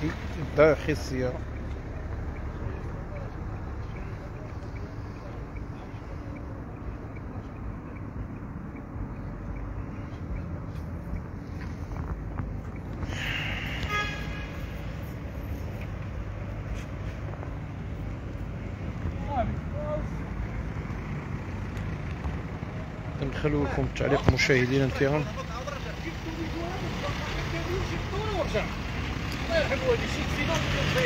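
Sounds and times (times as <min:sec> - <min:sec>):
street traffic rumbling: 0:00.0 - 0:31.0
car horn: 0:13.2 - 0:15.0.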